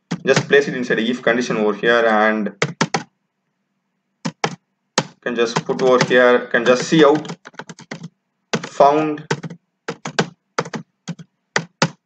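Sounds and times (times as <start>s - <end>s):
computer keyboard typing: 0.0s - 0.6s, 2.6s - 3.1s, 4.2s - 12.0s.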